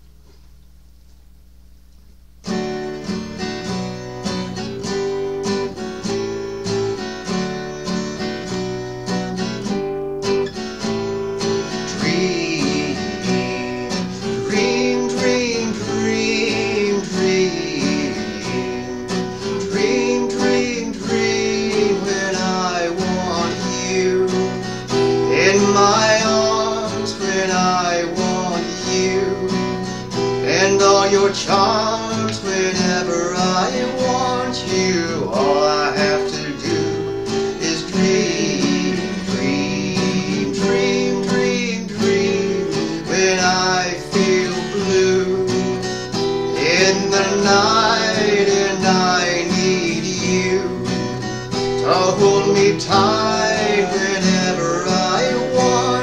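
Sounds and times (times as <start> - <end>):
acoustic guitar playing: 2.0 - 56.0.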